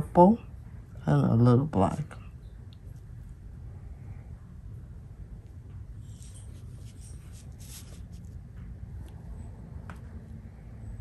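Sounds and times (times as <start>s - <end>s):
low room hum: 0.0s - 11.0s
brush strokes on paper: 6.0s - 8.5s.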